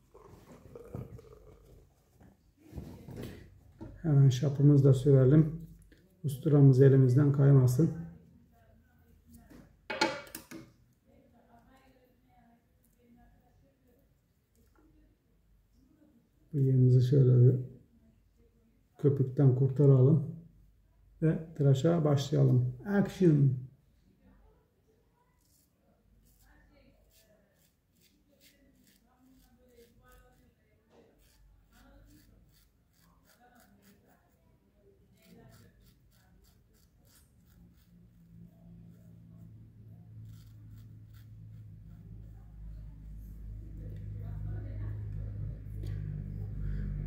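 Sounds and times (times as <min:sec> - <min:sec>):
razor scraping stubble: 0:25.4 - 0:34.4, 0:35.1 - 0:44.1
low hum: 0:38.2 - 0:47.0.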